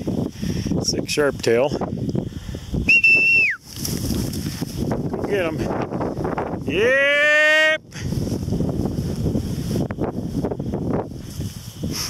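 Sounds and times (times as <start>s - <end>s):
wind on microphone: 0.0s - 12.0s
whistle blast: 2.8s - 3.6s.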